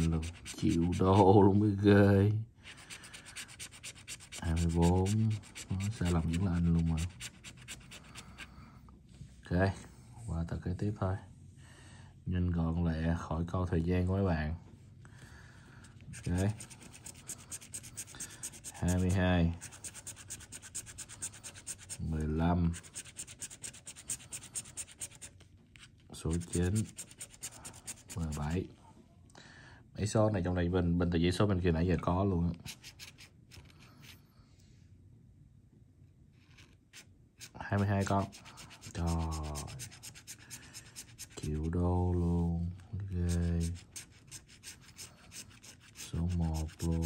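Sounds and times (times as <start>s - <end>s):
scratch-off ticket being scraped: 0.0s - 1.6s, 2.6s - 8.5s, 16.1s - 25.4s, 26.2s - 28.6s, 36.4s - 41.7s, 43.1s - 47.0s.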